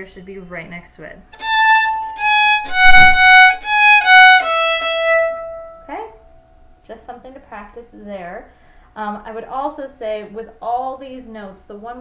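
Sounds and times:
violin bowed notes: 1.4s - 6.1s.

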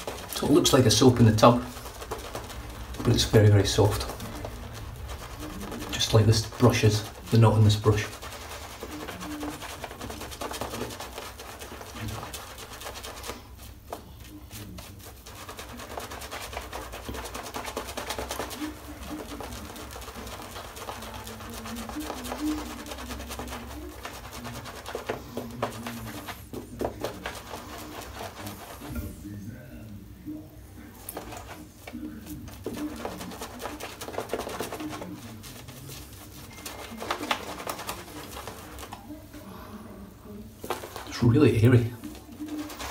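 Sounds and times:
shaving brush lathering cream: 0.0s - 42.9s.

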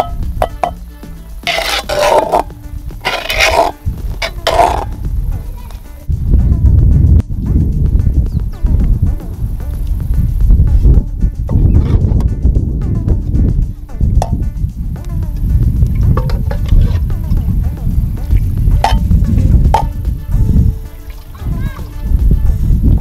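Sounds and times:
background music: 0.0s - 23.0s
bowl scraping porridge in pot: 1.4s - 5.0s.

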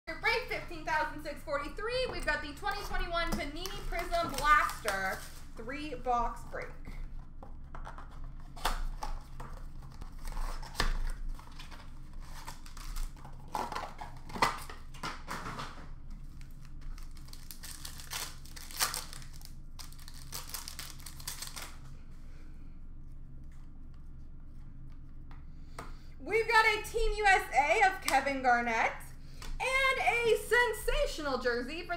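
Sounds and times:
plastic wrappers crinkling and tearing: 2.6s - 6.0s, 7.8s - 15.5s, 16.2s - 21.9s.

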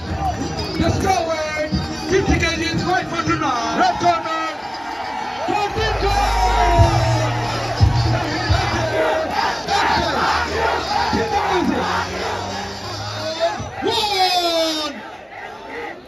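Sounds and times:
crowd cheering and shouting: 0.0s - 16.0s
music with deep bass: 5.4s - 13.2s.

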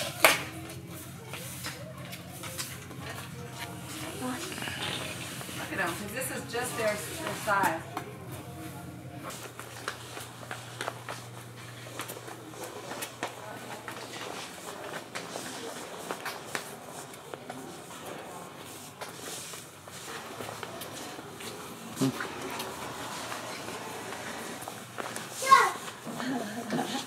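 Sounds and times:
children's footsteps on hard floor: 0.0s - 8.5s, 9.2s - 27.0s
steady low hum: 0.0s - 27.0s.

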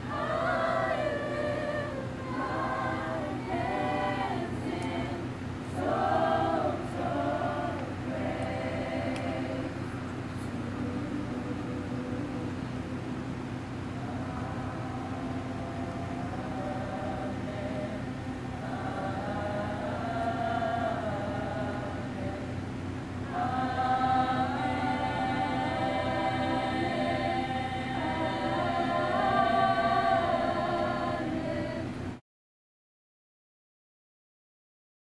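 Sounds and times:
group singing: 0.0s - 13.0s, 13.8s - 32.2s.

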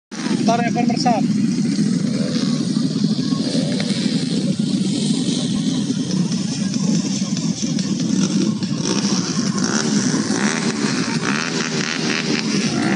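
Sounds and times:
motorcycle engines droning: 0.1s - 12.9s.

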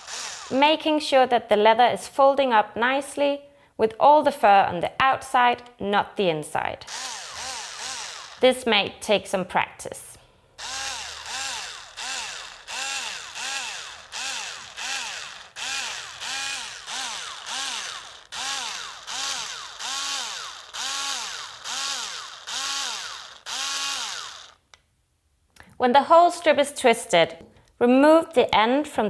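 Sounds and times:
cordless drill motor whine: 0.0s - 0.6s, 6.9s - 8.4s, 10.6s - 24.6s.

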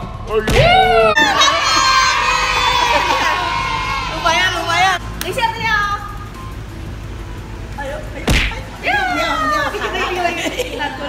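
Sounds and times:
traffic: 0.0s - 11.0s
faint arcade machine music: 4.7s - 11.0s.

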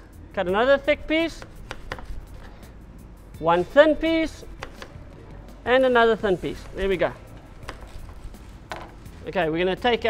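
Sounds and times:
knife tapping cutting board: 1.4s - 2.1s, 4.6s - 5.0s, 7.6s - 8.1s.

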